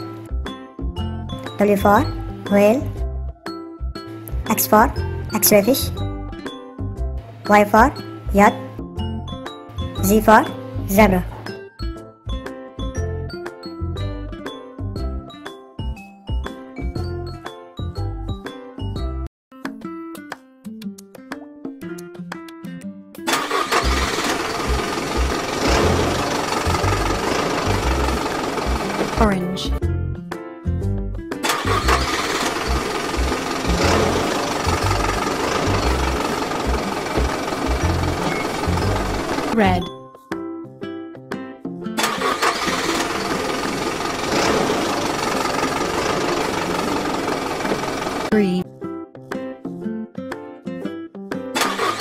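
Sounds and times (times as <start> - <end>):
children's background music: 0.0 - 43.7, 48.2 - 52.0
engine starting and chugging: 23.3 - 29.8, 31.4 - 39.8, 42.0 - 48.6, 51.6 - 52.0.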